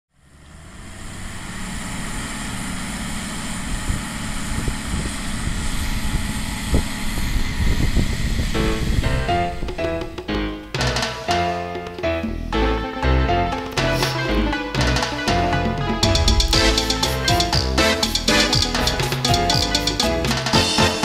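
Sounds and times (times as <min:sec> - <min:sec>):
tractor diesel engines under load: 0:00.2 - 0:09.1
instrumental music: 0:08.6 - 0:21.0.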